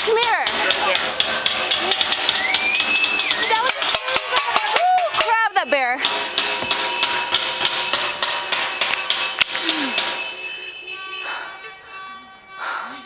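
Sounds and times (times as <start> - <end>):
music with held tones: 8.8 - 13.0.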